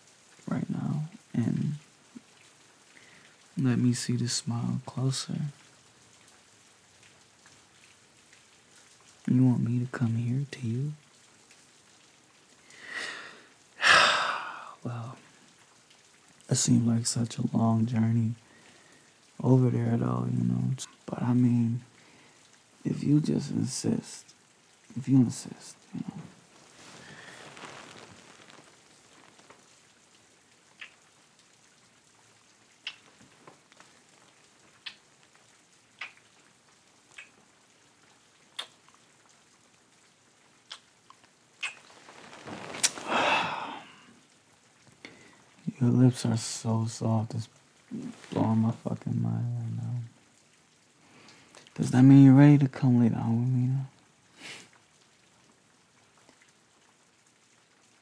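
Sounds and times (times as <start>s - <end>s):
faint steady rain: 0.0s - 58.0s
soft hiss: 0.0s - 58.0s
kisses into microphone: 41.6s - 41.9s.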